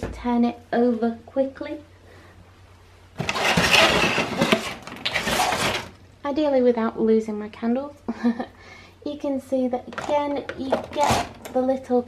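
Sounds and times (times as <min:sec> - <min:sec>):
plastic case crackling and knocking: 0:03.2 - 0:06.0, 0:09.9 - 0:11.6.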